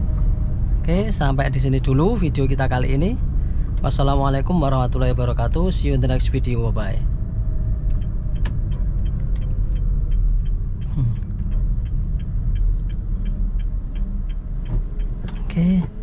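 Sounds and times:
car engine and road noise: 0:00.0 - 0:16.0
turn signal ticking: 0:00.0 - 0:16.0.

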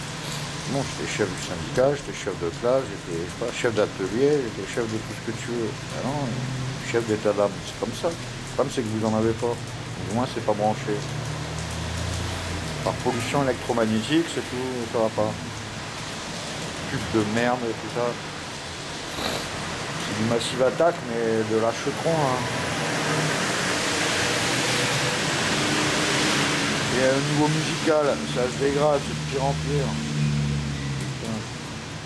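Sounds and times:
person speaking: 0:00.7 - 0:08.0
speech: 0:00.7 - 0:11.1, 0:12.8 - 0:15.5, 0:16.9 - 0:18.2, 0:20.0 - 0:22.5, 0:26.9 - 0:30.0, 0:31.2 - 0:31.5.

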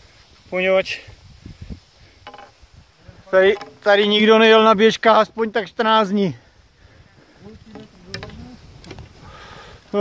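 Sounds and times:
skis and poles thudding in snow: 0:03.4 - 0:04.4.

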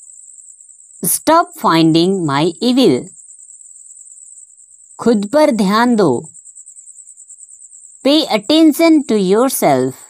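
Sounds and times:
person speaking: 0:01.0 - 0:03.1, 0:05.0 - 0:06.3, 0:08.1 - 0:10.0.

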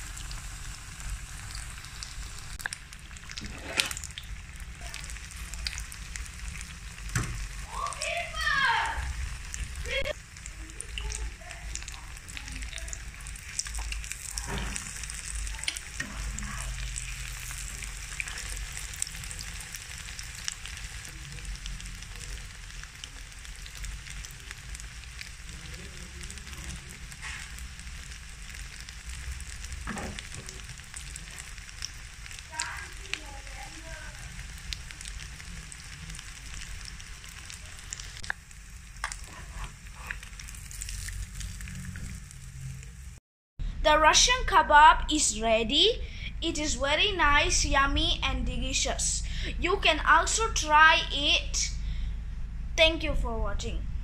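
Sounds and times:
food sizzling in hot oil: 0:00.0 - 0:43.2.

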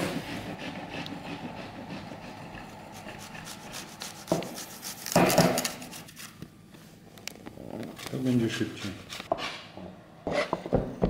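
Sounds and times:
mushroom scraping on metal grater: 0:00.0 - 0:06.2.

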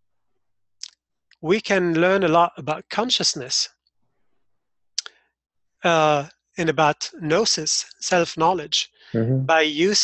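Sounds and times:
man's voice: 0:05.8 - 0:10.0.

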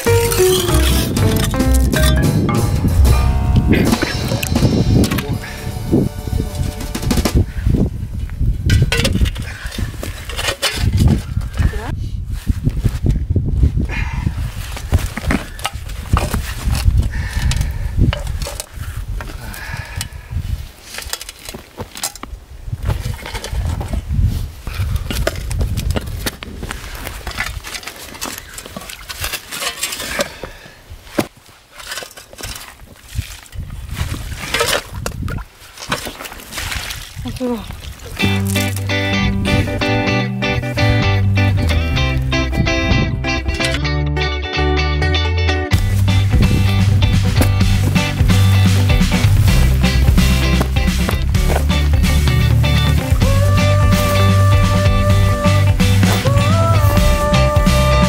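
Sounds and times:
shovel scraping stone and soil: 0:00.0 - 0:02.2, 0:27.1 - 0:30.4, 0:31.1 - 0:33.7, 0:34.3 - 0:35.0.

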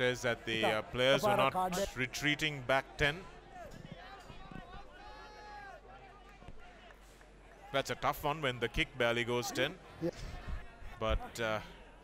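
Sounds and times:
low crowd murmur: 0:09.8 - 0:12.0.

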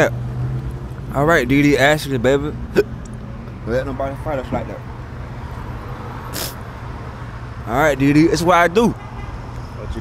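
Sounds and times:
road traffic rumble: 0:00.0 - 0:10.0
brief sharp hiss: 0:06.3 - 0:06.6.

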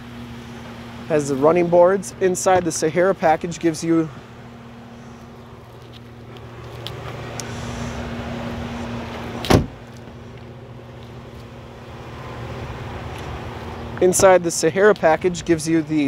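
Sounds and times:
road traffic noise: 0:00.0 - 0:16.0
sharp thump: 0:09.4 - 0:09.8.

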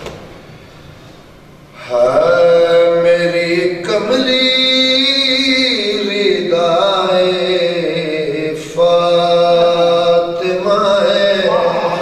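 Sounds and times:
man chanting: 0:01.8 - 0:12.0.

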